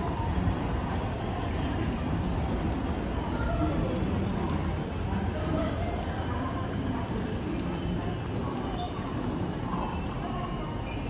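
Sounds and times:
station platform rumble and hum: 0.0s - 11.0s.

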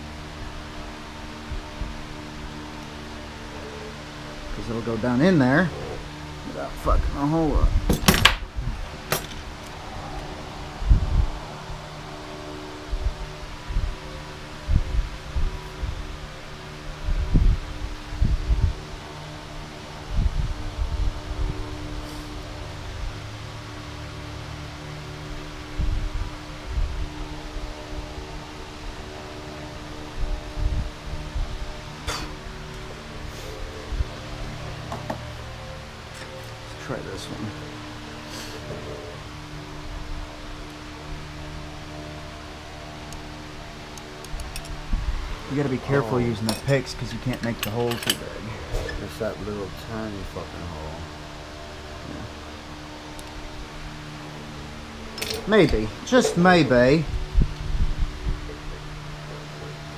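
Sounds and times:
knocks and clicks of handling metal parts: 7.9s - 8.4s, 9.1s - 9.8s, 46.5s - 48.2s, 55.2s - 56.4s
soft ambient music: 8.9s - 59.9s.

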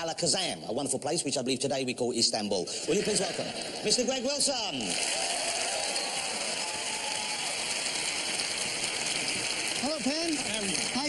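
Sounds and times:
audience applauding: 4.8s - 11.0s.

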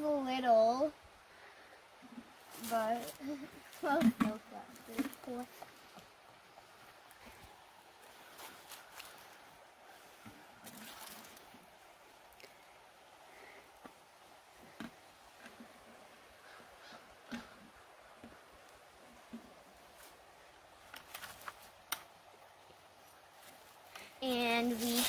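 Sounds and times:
plastic bucket knocks and rustles: 3.9s - 5.3s.

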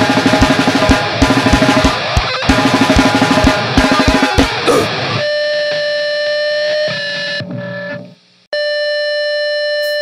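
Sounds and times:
full band playing: 0.0s - 4.9s
distorted electric guitar note: 0.0s - 8.4s.

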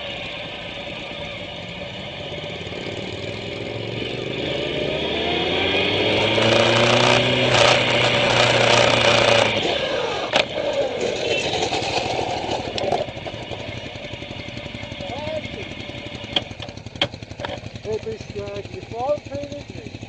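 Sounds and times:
motorcycle engine accelerating: 0.0s - 20.0s.

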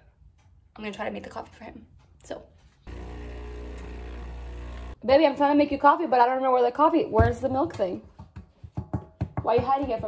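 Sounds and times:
coffee grinder grinding: 2.9s - 5.0s.

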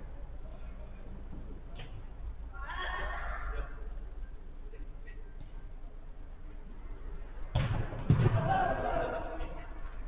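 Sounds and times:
steady low background noise: 0.0s - 10.0s
sudden loud thud: 7.6s - 8.7s.

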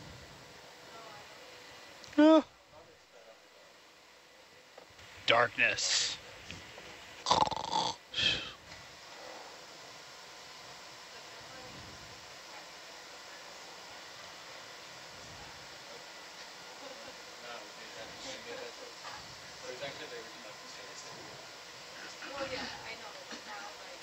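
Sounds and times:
short voice sounds: 2.1s - 2.5s, 8.2s - 8.5s.

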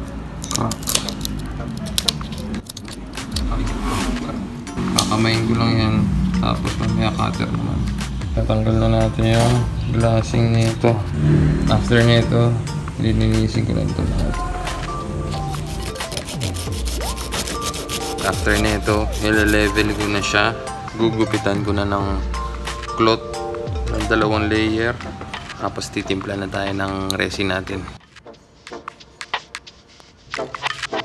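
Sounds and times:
fiberglass crackling and snapping: 0.0s - 3.6s
low rumble: 3.0s - 15.6s
sandpaper rubbing fibreglass: 15.3s - 20.4s.

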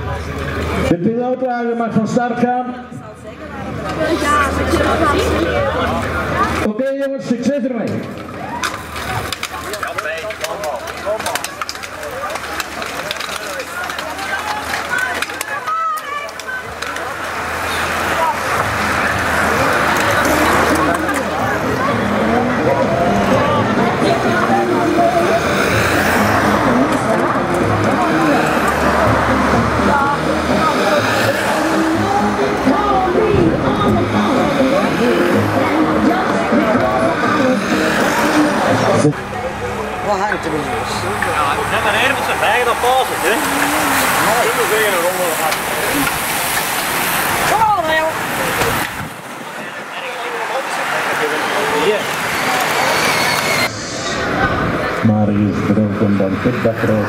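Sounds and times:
spectators talking: 0.0s - 57.0s
cars driving past close by: 8.1s - 57.0s.

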